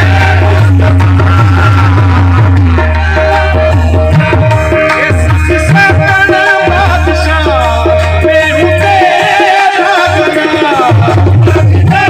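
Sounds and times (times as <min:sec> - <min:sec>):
hand drum beats: 0:00.0 - 0:12.0
harmonium chords: 0:00.0 - 0:12.0
men singing into microphones: 0:00.0 - 0:12.0.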